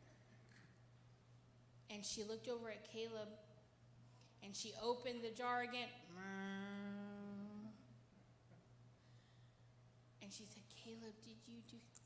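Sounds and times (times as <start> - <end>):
woman humming: 6.1 - 7.9.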